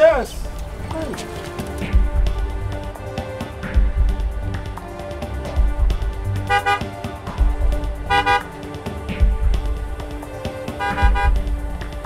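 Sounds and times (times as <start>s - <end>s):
background music: 0.0s - 12.0s
truck horn honking: 6.5s - 7.0s, 8.1s - 8.5s, 10.8s - 11.4s.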